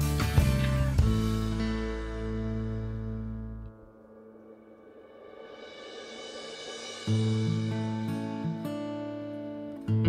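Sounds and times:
soft instrumental music: 0.0s - 5.0s, 6.0s - 10.0s.

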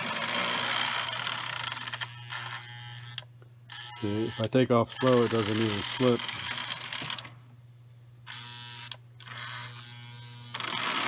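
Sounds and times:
toy train motor buzzing: 0.0s - 7.4s, 8.2s - 11.0s
steady low hum: 0.0s - 11.0s.

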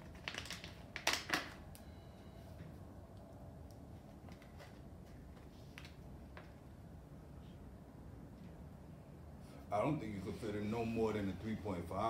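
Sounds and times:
plastic bag crinkling: 0.0s - 1.6s.

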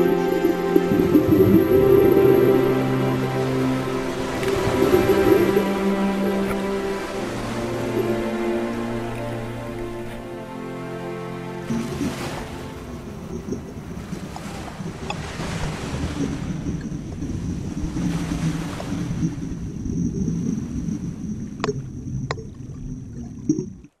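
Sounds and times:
underwater rush of water: 0.0s - 24.0s
scuba exhaust bubbles: 12.8s - 24.0s.

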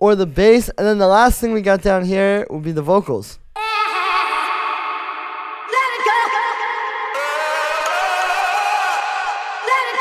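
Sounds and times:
sung vocal samples with reverb: 3.5s - 10.0s.

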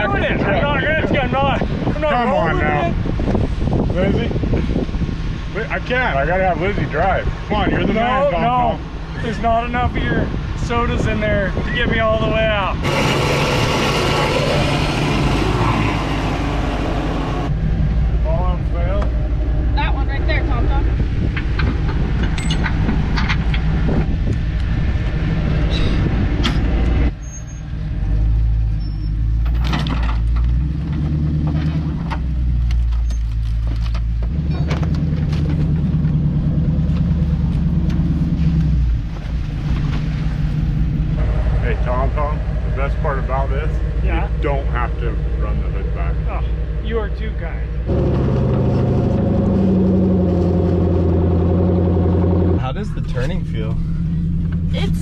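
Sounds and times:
vehicle engines running at low speed: 0.0s - 55.0s.

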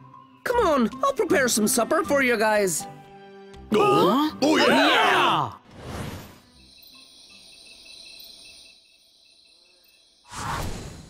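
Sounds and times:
crickets chirping: 6.1s - 11.0s.

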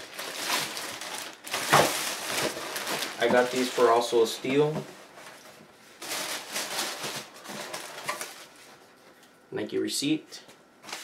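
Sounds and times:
tissue paper rustling and crinkling: 0.0s - 9.0s.

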